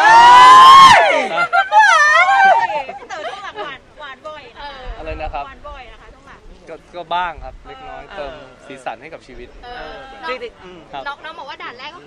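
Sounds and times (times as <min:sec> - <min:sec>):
high-pitched delighted squeal: 0:00.0 - 0:02.9
excited cry: 0:00.0 - 0:03.4.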